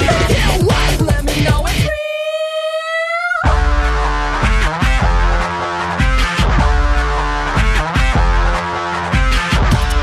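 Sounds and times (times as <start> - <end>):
rock band playing: 0.0 - 1.9, 3.5 - 10.0.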